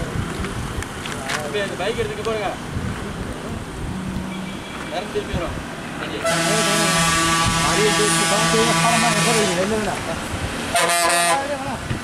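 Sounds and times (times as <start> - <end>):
traffic noise: 0.0 - 12.0
wind: 0.0 - 12.0
heavy vehicle horn blast: 4.0 - 5.2, 6.2 - 9.8, 10.7 - 11.6.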